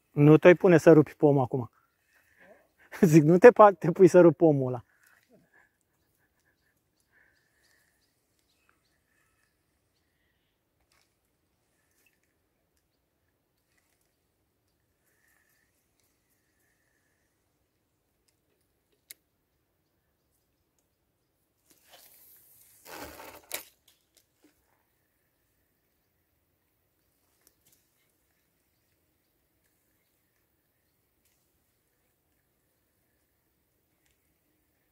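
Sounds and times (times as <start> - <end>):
click: 18.2 - 19.2
brief rustle: 21.6 - 24.7.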